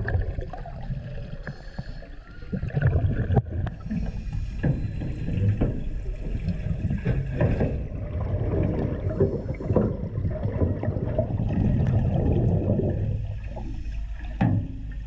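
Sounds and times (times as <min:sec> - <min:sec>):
underwater rumble and bubbles: 0:00.0 - 0:15.0.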